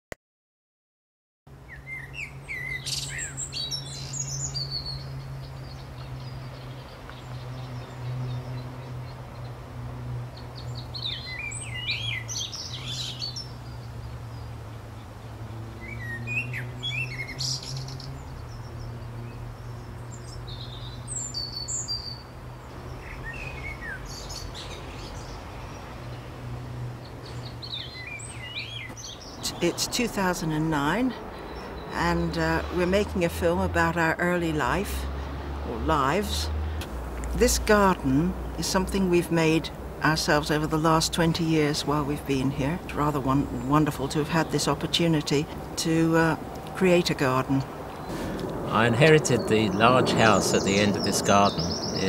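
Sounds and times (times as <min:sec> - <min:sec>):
birds chirping and warbling: 0:01.5 - 0:52.0.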